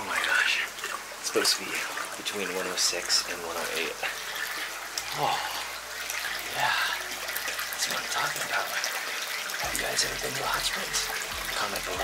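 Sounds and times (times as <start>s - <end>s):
water sloshing in a tub: 0.0s - 12.0s.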